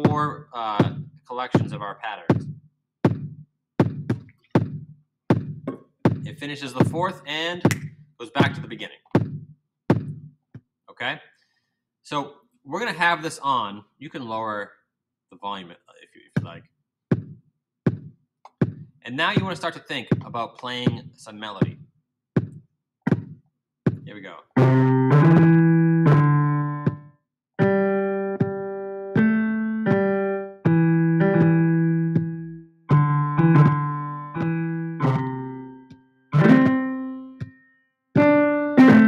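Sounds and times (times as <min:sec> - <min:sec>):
drum machine beat: 0:00.0 - 0:07.1, 0:07.7 - 0:10.3, 0:16.4 - 0:21.8, 0:22.4 - 0:35.6, 0:36.4 - 0:37.6, 0:38.2 - 0:39.0.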